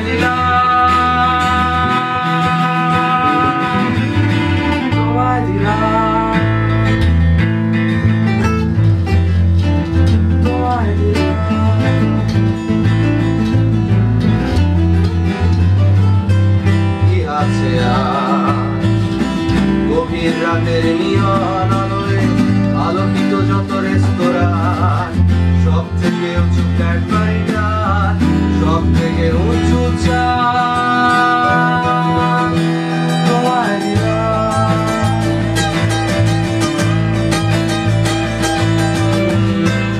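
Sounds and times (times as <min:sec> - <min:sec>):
man singing: 0:00.0 - 0:07.2, 0:10.3 - 0:13.6, 0:16.6 - 0:39.9
electric bass guitar: 0:00.0 - 0:39.9
strummed acoustic guitars: 0:00.0 - 0:39.9.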